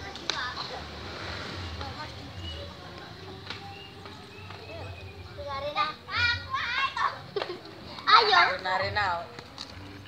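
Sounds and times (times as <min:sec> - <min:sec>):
child talking excitedly: 0:05.6 - 0:07.2.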